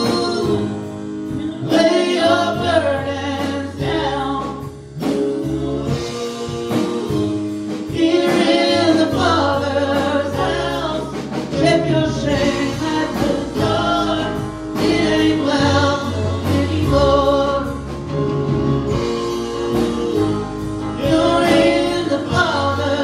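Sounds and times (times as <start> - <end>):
church band playing: 0.0 - 23.0
drums striking steadily: 0.0 - 23.0
group of singers: 0.0 - 23.0
held bass notes: 0.0 - 23.0.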